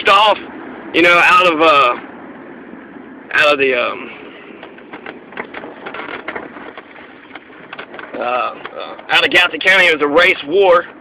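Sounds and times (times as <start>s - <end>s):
vehicle and road noise: 0.0s - 11.0s
clicks and light knocks: 4.6s - 9.1s.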